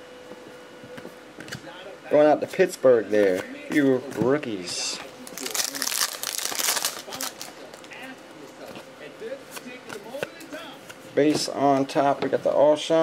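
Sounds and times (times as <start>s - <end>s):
wrapper tearing and crinkling: 5.2s - 7.6s
cards rustling and clicking: 5.2s - 7.9s.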